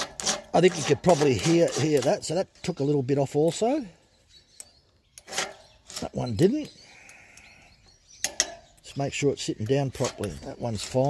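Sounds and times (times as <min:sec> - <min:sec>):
file scraping chainsaw chain: 0:00.0 - 0:02.3, 0:05.2 - 0:06.4, 0:09.9 - 0:11.0
faint bird chirps: 0:03.8 - 0:09.6.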